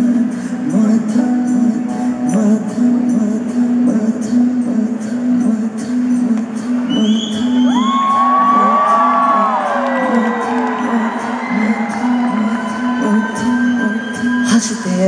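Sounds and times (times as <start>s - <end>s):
high whistle: 6.9s - 9.8s
crowd cheering and whooping: 7.4s - 14.7s.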